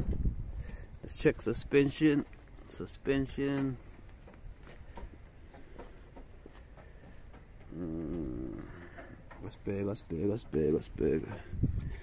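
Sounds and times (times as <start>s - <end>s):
low wavering vocal sound: 7.7s - 8.9s.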